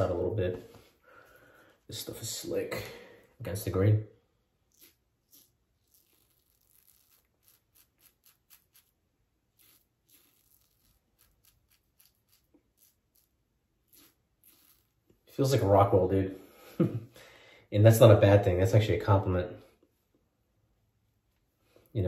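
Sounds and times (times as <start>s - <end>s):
safety razor scraping stubble: 4.7s - 15.0s.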